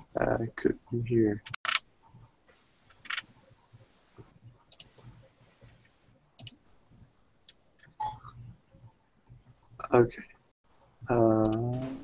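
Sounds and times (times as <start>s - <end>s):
sharp clicks: 6.4s - 6.6s.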